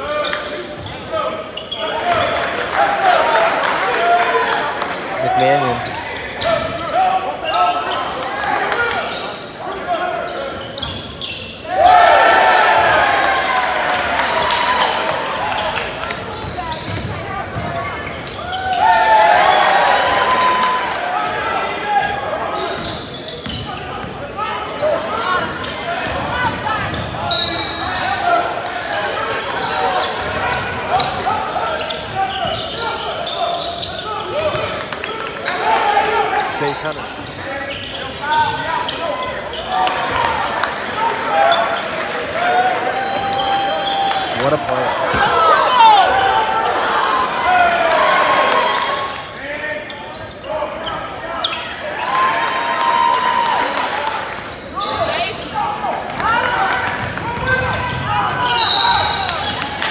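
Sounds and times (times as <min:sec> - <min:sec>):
sneakers squeaking on hardwood: 0:10.2 - 0:11.6, 0:15.6 - 0:18.8, 0:22.0 - 0:24.2, 0:29.3 - 0:34.7, 0:36.7 - 0:39.9.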